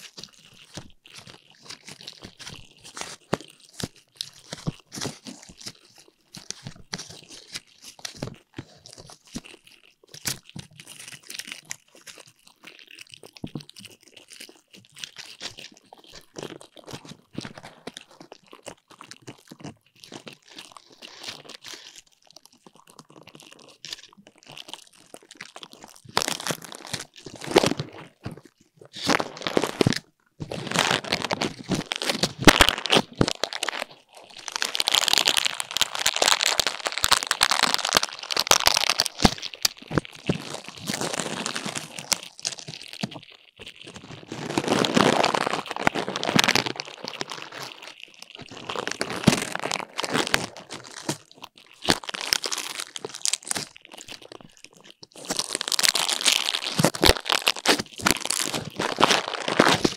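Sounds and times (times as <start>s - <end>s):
chestnut burrs scratching microphone: 26.0s - 51.5s.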